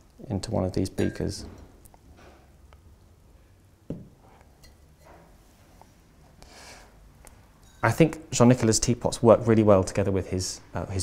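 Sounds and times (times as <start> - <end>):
soft knock: 3.9 - 4.2.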